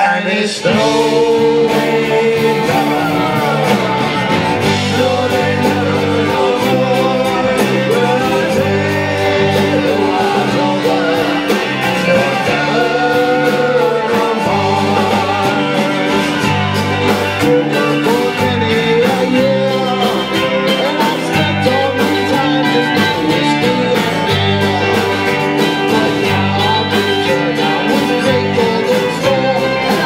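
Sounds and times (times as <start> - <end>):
bass: 0.0 - 30.0
electric and acoustic guitars: 0.0 - 30.0
person singing lead vocal: 0.0 - 30.0.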